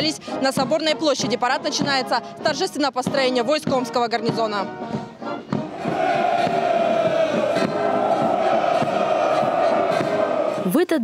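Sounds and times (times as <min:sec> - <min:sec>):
soldiers shouting together: 0:05.7 - 0:10.7.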